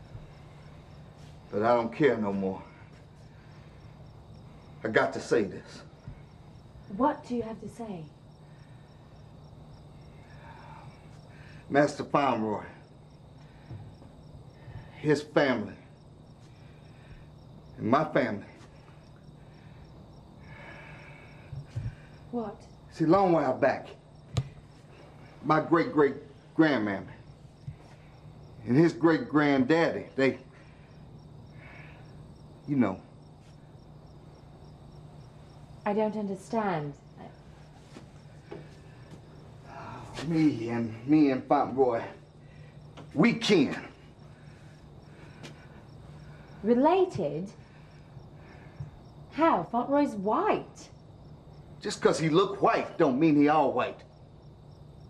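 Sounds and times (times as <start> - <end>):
cricket chirping: 0.0 - 55.0
faint low hum: 0.0 - 55.0.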